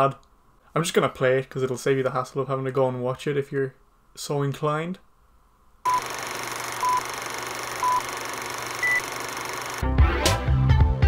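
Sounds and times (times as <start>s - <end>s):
countdown beeps: 7.8s - 8.1s, 8.8s - 9.0s
music: 9.8s - 11.0s.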